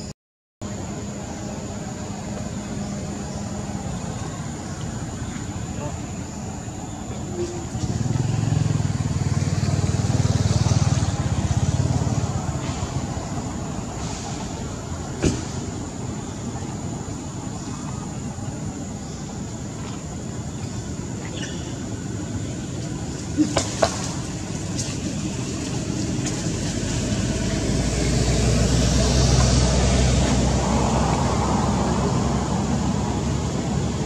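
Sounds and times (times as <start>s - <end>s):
low engine rumble: 0.0s - 34.0s.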